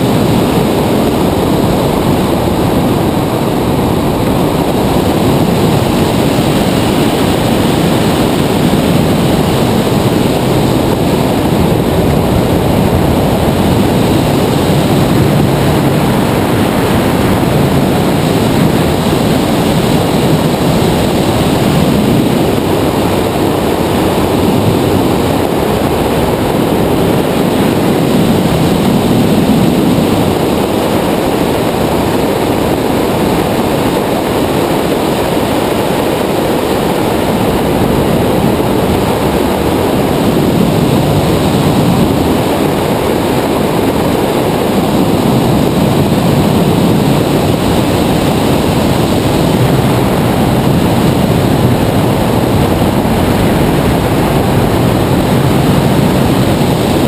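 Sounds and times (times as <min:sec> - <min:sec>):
wind rushing over microphone: 0:00.0 - 0:57.0.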